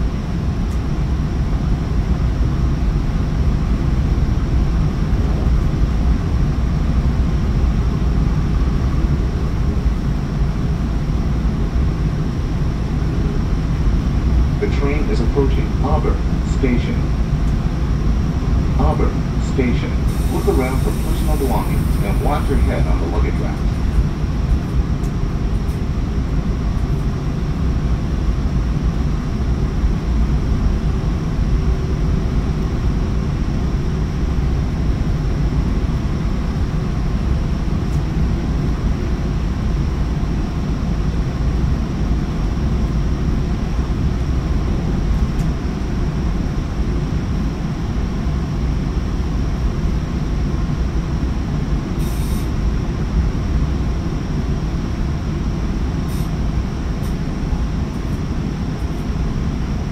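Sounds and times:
train rumbling at speed: 0.0s - 59.9s
passing freight train: 17.1s - 24.5s
brief hiss: 52.0s - 52.5s.

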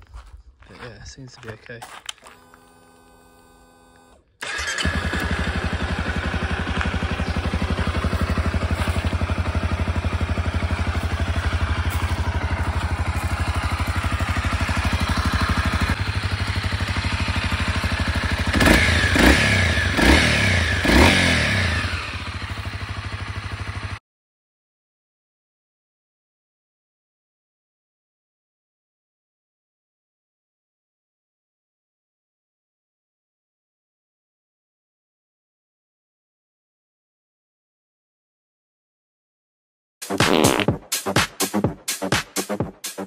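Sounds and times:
motorcycle engine starting and idling: 1.9s - 24.0s
engine revving: 2.4s - 24.0s.

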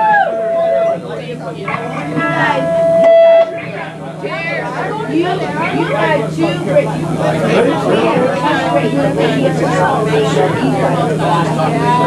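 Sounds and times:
live band held note: 0.0s - 6.5s.

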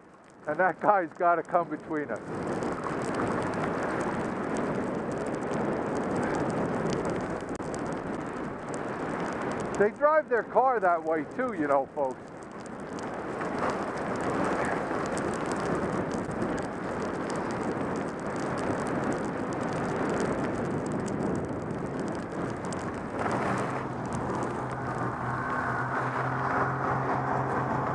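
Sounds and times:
skis scraping over snow: 0.5s - 27.9s
wind rushing past microphone: 0.6s - 27.9s
steady engine hum: 12.2s - 27.9s.

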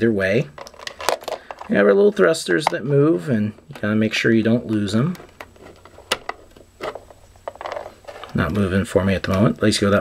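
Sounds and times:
plastic rubbing: 3.6s - 9.6s.

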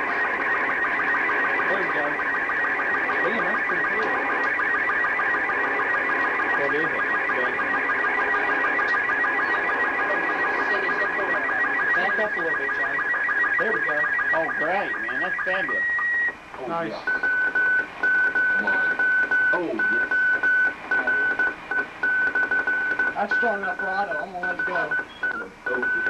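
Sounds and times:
warbling radio signal tones: 0.0s - 26.0s.

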